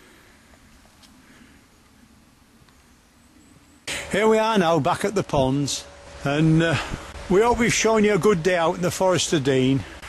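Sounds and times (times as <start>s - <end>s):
open air hiss: 0.0s - 10.0s.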